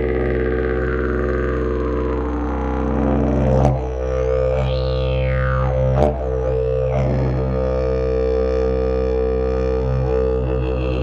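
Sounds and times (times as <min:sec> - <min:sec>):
didgeridoo drone: 0:00.0 - 0:11.0.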